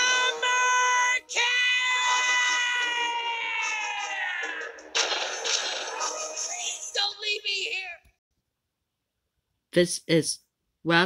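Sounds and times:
cartoon character yelling: 0:00.0 - 0:04.8.

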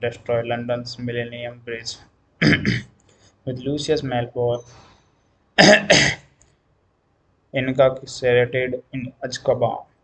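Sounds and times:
man coughing: 0:02.4 - 0:02.9, 0:05.6 - 0:06.3.

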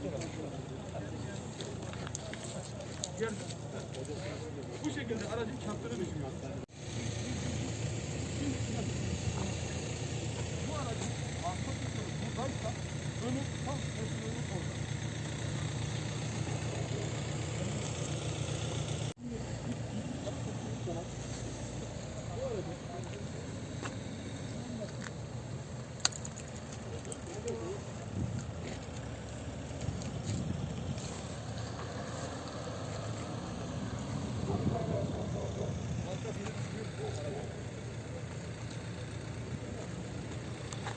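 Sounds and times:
people talking indistinctly: 0:00.0 - 0:18.2, 0:34.2 - 0:40.9
vehicle engine idling: 0:00.0 - 0:40.9.

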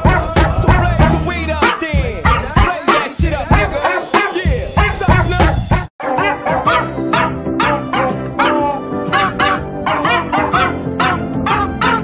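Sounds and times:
musical backing: 0:00.0 - 0:12.0
pitched dog bark samples: 0:01.6 - 0:05.0, 0:06.0 - 0:12.0.

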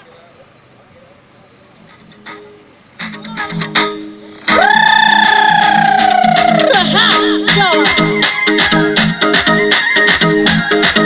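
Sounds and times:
distant voices: 0:00.0 - 0:06.7
road traffic: 0:00.0 - 0:11.0.

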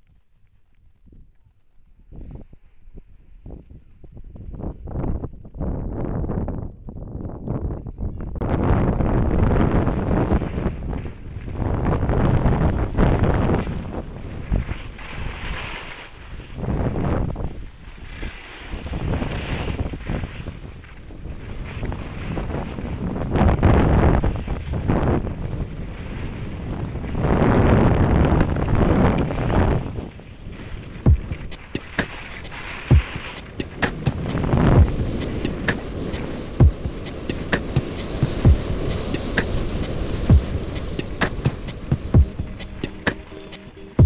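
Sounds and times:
wind rushing over microphone: 0:01.9 - 0:44.0.

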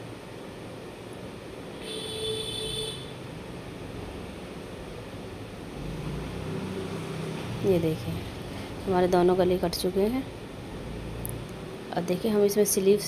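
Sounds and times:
steady background noise: 0:00.0 - 0:13.0.

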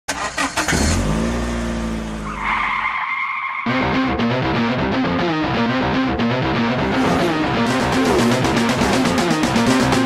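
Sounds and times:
car engine running: 0:00.1 - 0:02.4, 0:06.4 - 0:10.0
tire squeal: 0:02.1 - 0:03.8
electric guitar music: 0:03.7 - 0:10.0.

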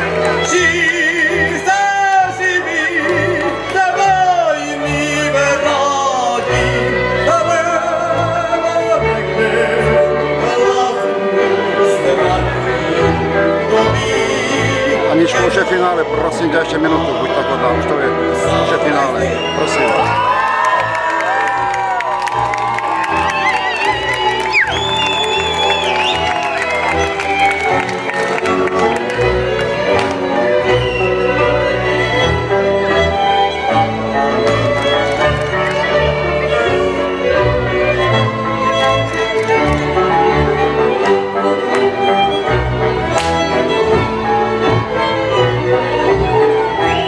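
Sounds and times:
cimbalom band with fiddle: 0:00.0 - 0:21.4, 0:22.1 - 0:47.0
crowd cheering and shouting: 0:19.2 - 0:31.7.

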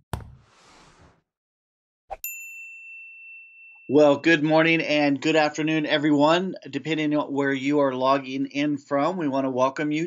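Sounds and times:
high ringing chime: 0:02.2 - 0:04.6.

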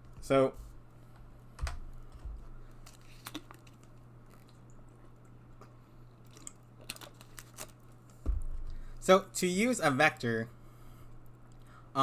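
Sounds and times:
low electrical hum: 0:00.0 - 0:12.0
dull thump: 0:08.2 - 0:08.8.

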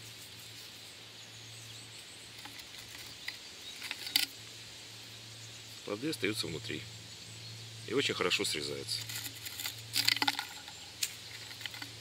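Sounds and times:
clicks and rustles of bush: 0:00.0 - 0:06.8, 0:07.9 - 0:12.0.

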